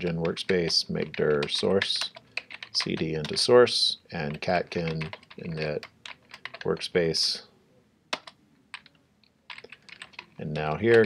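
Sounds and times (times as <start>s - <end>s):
keyboard keystrokes: 8.1s - 11.0s.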